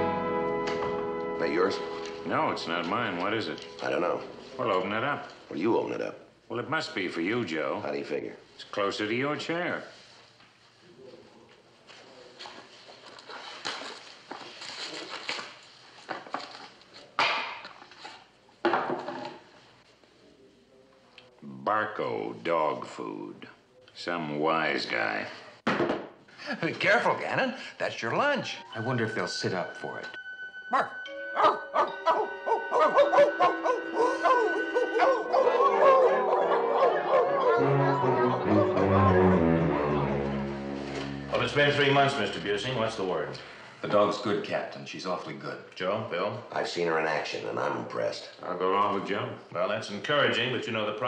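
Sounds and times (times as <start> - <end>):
wrapping paper rustling: 12.4 - 17.1
men imitating dog barks: 30.7 - 38.2.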